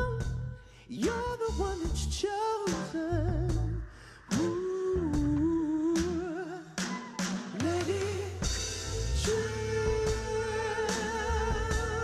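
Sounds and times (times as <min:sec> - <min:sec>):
backing music: 0:01.1 - 0:12.0
man singing a long note: 0:07.6 - 0:12.0.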